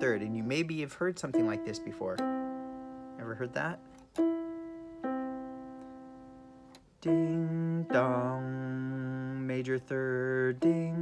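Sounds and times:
electronic keyboard piano note: 0.0s - 11.0s.

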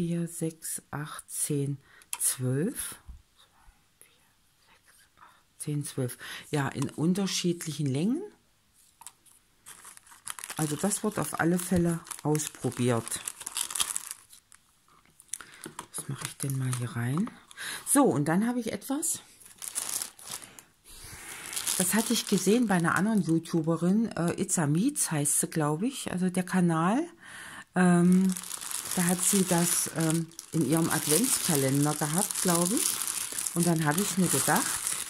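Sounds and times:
faint whisper: 3.4s - 5.5s
plastic bag crinkling: 9.0s - 14.6s, 15.2s - 17.7s, 19.4s - 23.6s, 28.1s - 35.0s
small objects ticking and thumping: 15.1s - 16.5s, 28.3s - 35.0s.

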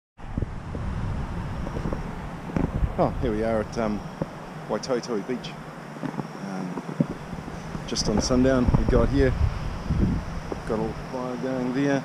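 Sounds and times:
wind buffeting microphone: 0.2s - 11.8s
camera handling knocks: 6.0s - 8.3s.

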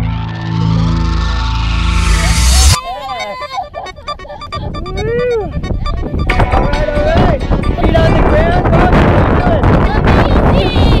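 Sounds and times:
wind buffeting microphone: 4.2s - 11.0s.

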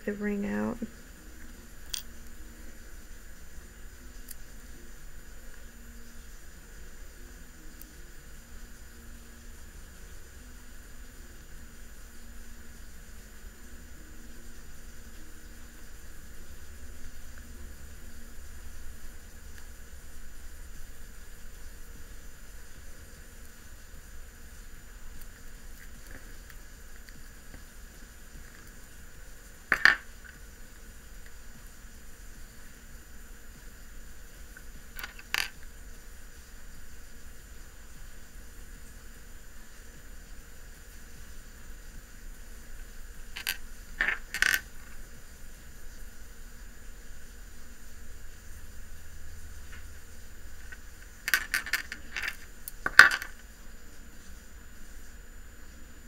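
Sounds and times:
glass beads clicking: 35.0s - 35.5s, 51.2s - 53.3s.

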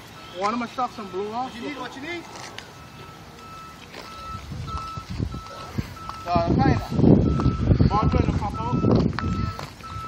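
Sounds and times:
reversing alarm beeping: 0.0s - 10.0s.

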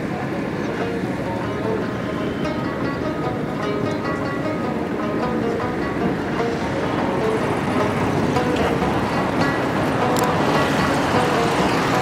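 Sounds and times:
road traffic noise: 0.0s - 12.0s
music playing: 0.3s - 12.0s.

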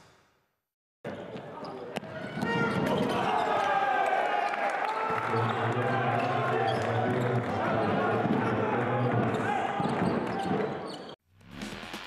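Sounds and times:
crowd noise: 1.1s - 11.2s.

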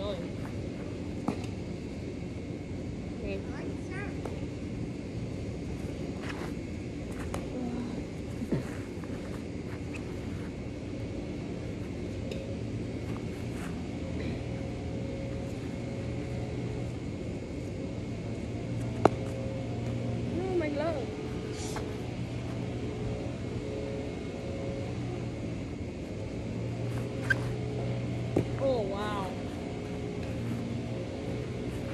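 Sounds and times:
low mechanical hum: 0.0s - 31.9s
baseball smacking into glove: 18.9s - 19.3s.

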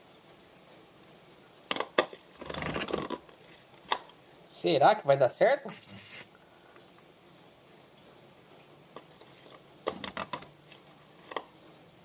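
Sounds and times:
plastic clicks and knocks: 9.8s - 10.5s.

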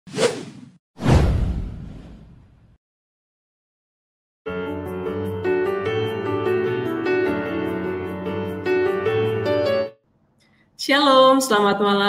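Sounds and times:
short swish: 0.1s - 2.6s.

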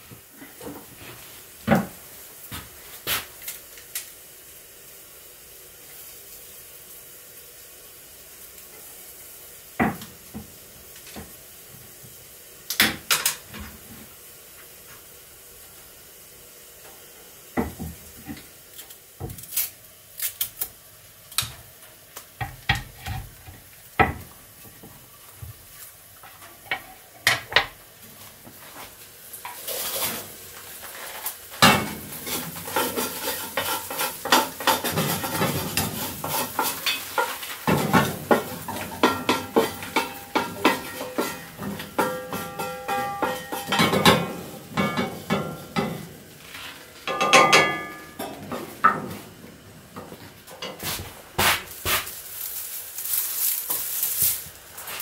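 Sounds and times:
food sizzling: 0.0s - 55.0s
metal utensils clinking on pots: 26.2s - 27.8s, 31.6s - 46.2s, 47.0s - 49.2s.

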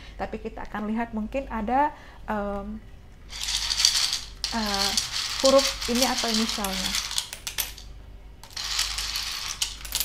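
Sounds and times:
wooden tiles clattering: 3.4s - 10.0s.

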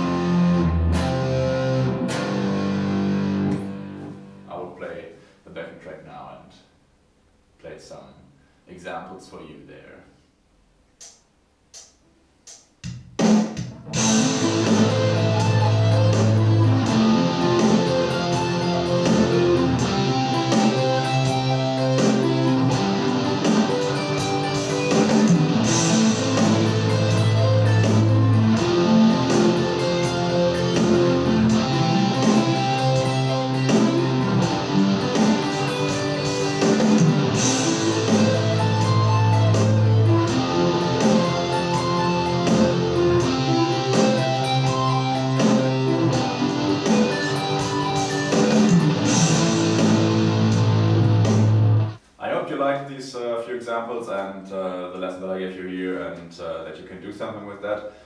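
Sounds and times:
backing track with bass and drums: 0.0s - 4.5s, 12.5s - 52.0s
electric guitar arpeggios: 0.0s - 4.5s, 13.9s - 52.0s.

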